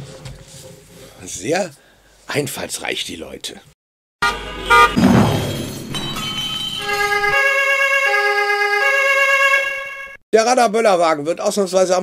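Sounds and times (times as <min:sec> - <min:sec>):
car horn honks: 0:04.2 - 0:05.1, 0:06.8 - 0:10.2
long blare of car horns: 0:04.2 - 0:05.1, 0:06.8 - 0:10.2.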